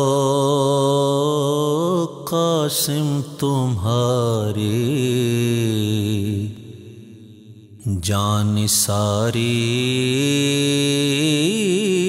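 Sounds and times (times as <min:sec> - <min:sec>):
man singing chant-like song: 0:00.0 - 0:12.0.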